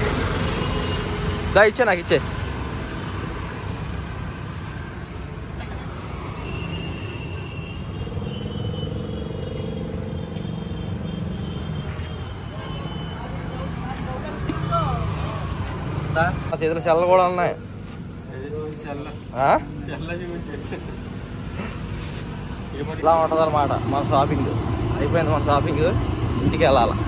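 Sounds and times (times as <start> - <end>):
road traffic rumble: 0.0 - 27.0
people talking: 22.7 - 27.0.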